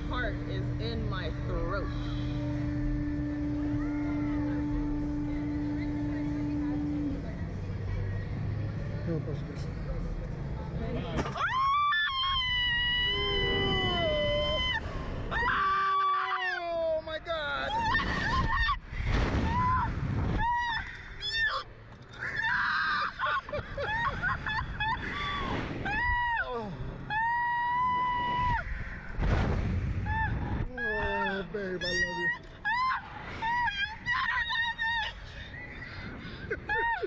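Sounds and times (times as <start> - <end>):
woman screaming: 11.4 - 16.8, 24.8 - 28.7, 30.1 - 35.2
lower voice screaming: 11.5 - 17.0
wind rumbling on microphone: 23.9 - 31.3
wind noise on microphone: 27.8 - 31.1.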